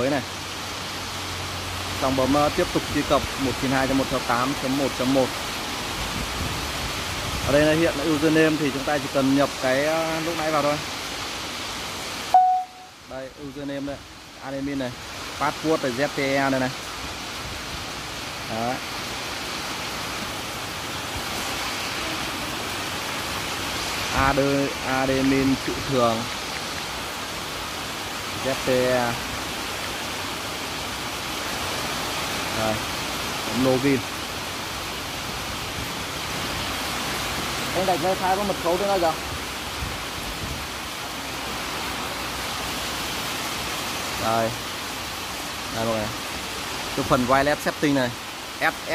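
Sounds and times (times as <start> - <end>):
steady hiss: 0.0 - 48.9.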